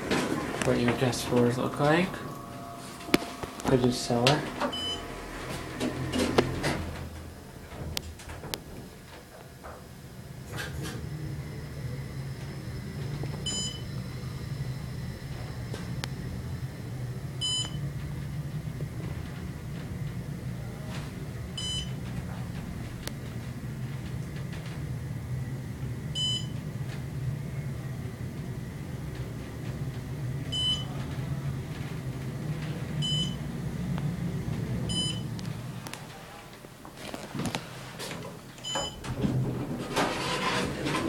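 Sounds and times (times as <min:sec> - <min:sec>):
elevator hum: 0:00.0 - 0:41.0.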